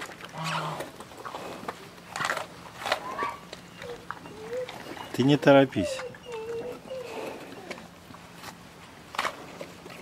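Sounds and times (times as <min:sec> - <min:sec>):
bear cub crunching and chewing: 0:00.0 - 0:10.0.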